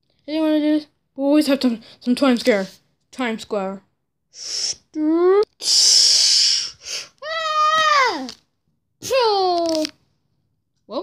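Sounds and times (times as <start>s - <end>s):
child hissing: 4.3s - 8.4s
child whooping: 7.2s - 8.4s.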